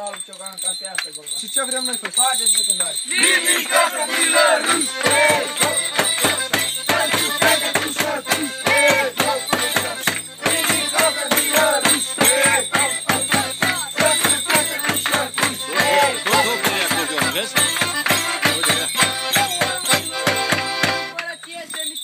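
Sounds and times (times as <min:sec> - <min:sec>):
drum beating fast rhythm: 0:01.3 - 0:21.7.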